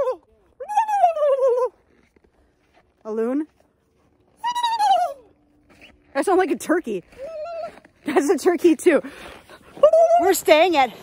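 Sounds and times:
woman talking: 3.0s - 3.6s, 6.1s - 7.2s, 8.0s - 9.1s, 9.8s - 11.0s.

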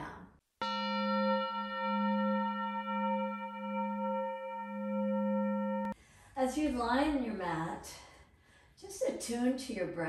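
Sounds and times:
metal chime ringing: 0.6s - 6.0s.

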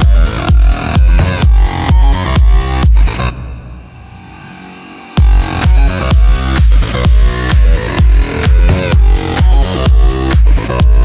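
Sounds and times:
kick drum beat: 0.0s - 3.2s, 5.2s - 11.0s
electro house track: 0.0s - 11.0s
sustained synth sound: 2.2s - 9.4s.

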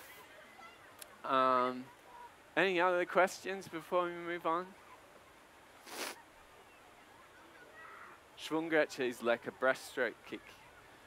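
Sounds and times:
short swish of noise: 5.8s - 6.2s.

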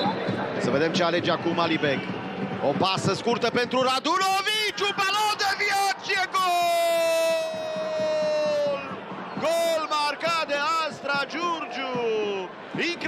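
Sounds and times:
excited sports commentary: 0.0s - 13.0s
commentator's long goal shout: 4.0s - 12.0s.

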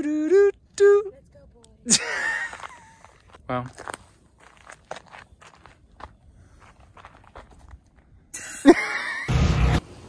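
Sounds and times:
footsteps on gravel: 2.2s - 8.0s.

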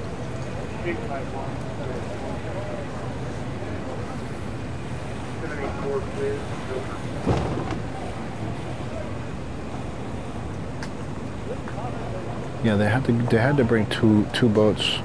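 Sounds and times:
people talking: 0.0s - 9.4s, 11.4s - 15.0s.

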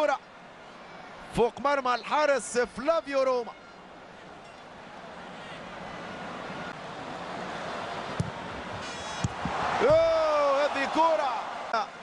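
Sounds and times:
football stadium crowd noise: 0.0s - 12.0s.

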